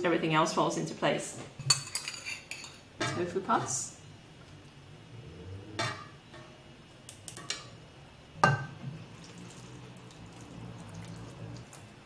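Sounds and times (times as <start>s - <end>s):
soup pouring into bowl: 9.0s - 12.0s.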